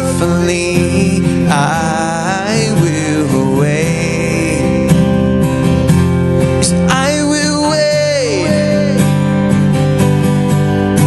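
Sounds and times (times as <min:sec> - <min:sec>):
man singing: 0:00.0 - 0:05.4, 0:06.6 - 0:09.4
strummed acoustic guitar: 0:00.0 - 0:11.0.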